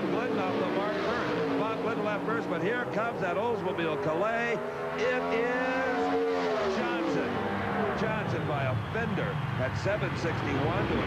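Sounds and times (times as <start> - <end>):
commentator speaking: 0.0 - 11.0
drag car engines at full throttle: 0.0 - 11.0.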